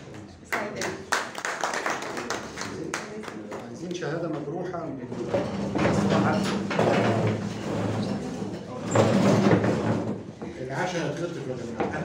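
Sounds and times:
audience clapping: 0.5 - 4.0.

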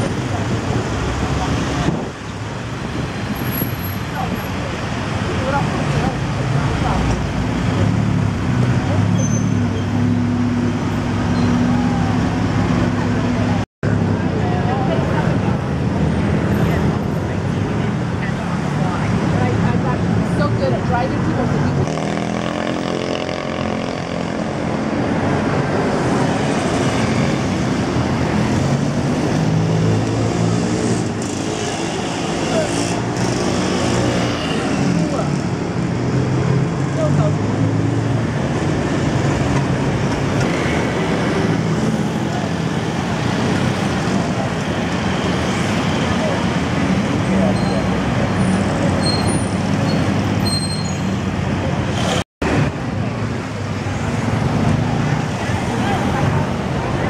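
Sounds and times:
city street traffic passing: 0.0 - 57.0.

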